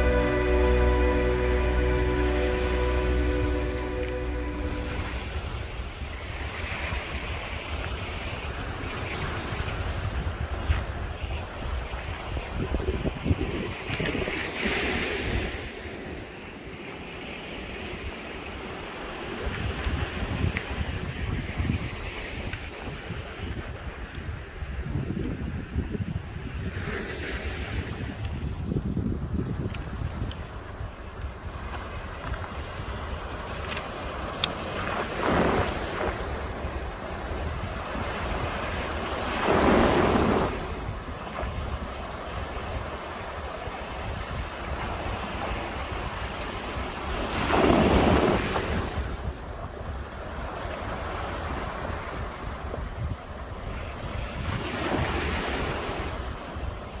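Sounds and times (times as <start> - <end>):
waves on a pebble beach: 0.0 - 24.9, 29.5 - 57.0
wind on microphone: 0.0 - 57.0.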